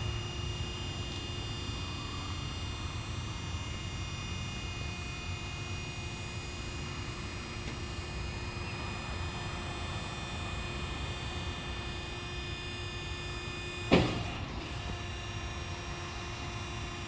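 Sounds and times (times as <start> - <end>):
sharp clunk: 13.9 - 14.5.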